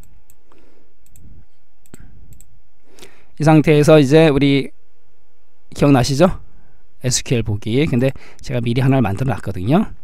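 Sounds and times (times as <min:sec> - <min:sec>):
computer mouse clicks: 0:00.0 - 0:02.5
low background hum: 0:00.0 - 0:10.0.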